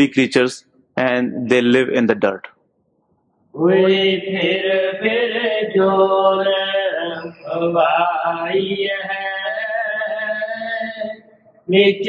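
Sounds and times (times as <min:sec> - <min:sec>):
man chanting: 0:03.6 - 0:12.0.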